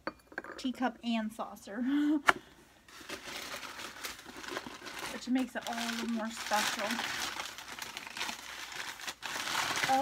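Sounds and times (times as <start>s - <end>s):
packing material crinkling: 2.9s - 10.0s.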